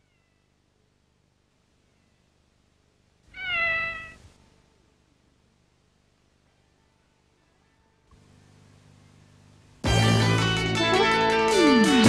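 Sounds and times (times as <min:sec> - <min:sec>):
cat meowing: 0:03.3 - 0:04.3.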